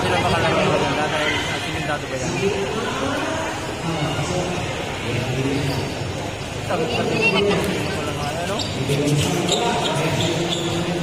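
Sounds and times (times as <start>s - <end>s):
spectators' voices and calls: 0.0s - 11.0s.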